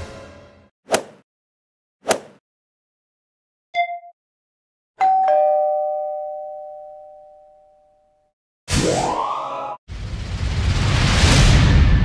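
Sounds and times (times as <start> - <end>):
two-note doorbell chime: 5.0 - 8.2.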